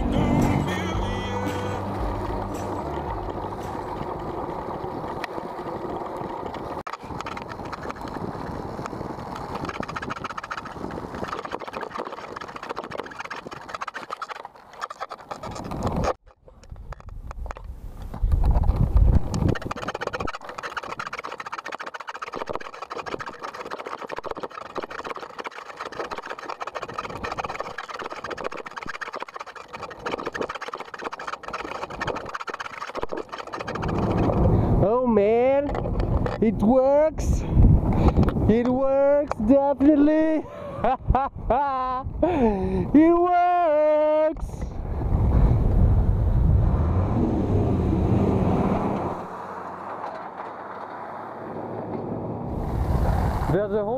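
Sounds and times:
skate wheels rattling on rough road: 0:00.0 - 0:40.4, 0:42.3 - 0:53.9
wind on microphone: 0:07.0 - 0:14.2, 0:15.4 - 0:21.2, 0:31.4 - 0:39.5, 0:44.4 - 0:49.3, 0:52.5 - 0:53.6.

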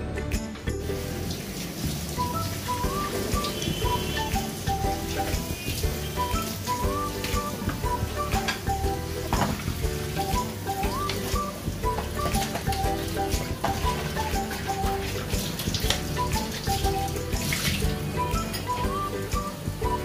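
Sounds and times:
light background music: 0:00.0 - 0:20.0
water boiling and bubbling: 0:00.7 - 0:20.0
broth sloshing: 0:01.0 - 0:19.1.

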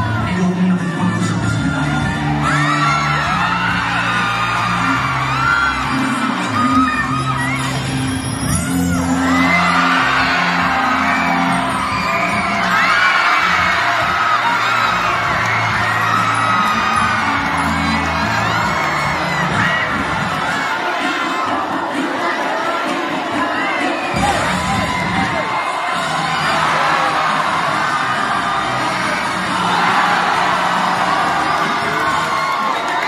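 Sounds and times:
crowd cheering and screaming: 0:00.0 - 0:33.0.

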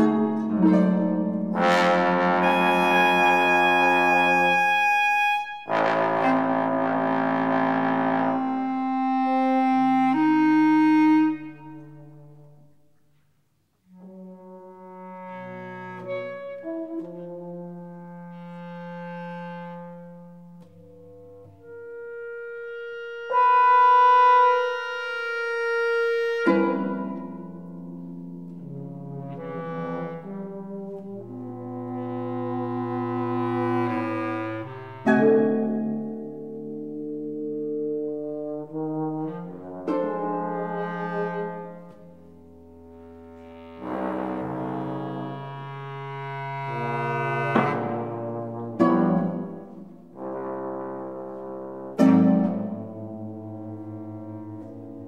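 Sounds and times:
harp: 0:00.0 - 0:07.0, 0:15.5 - 0:31.1, 0:32.1 - 0:37.7, 0:39.0 - 0:55.0
bass trombone: 0:00.0 - 0:12.8, 0:13.8 - 0:55.0
bass clarinet: 0:00.0 - 0:55.0.

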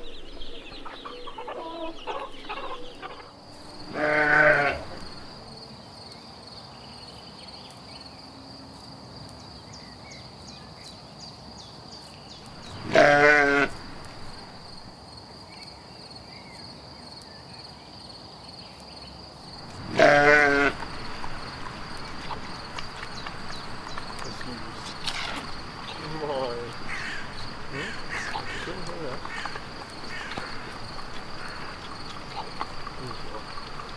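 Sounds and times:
sheep bleating: 0:03.8 - 0:05.0, 0:12.7 - 0:13.9, 0:19.8 - 0:20.8.

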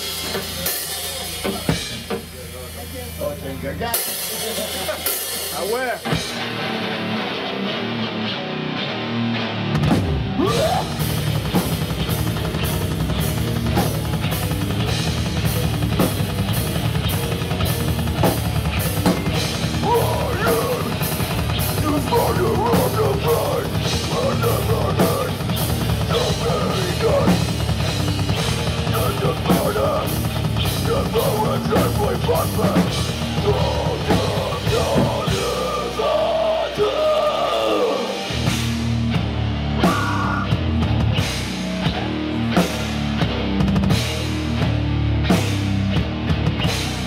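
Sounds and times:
drum kit beat: 0:00.0 - 0:08.3, 0:09.4 - 0:47.0
live rock band playing: 0:00.0 - 0:47.0.

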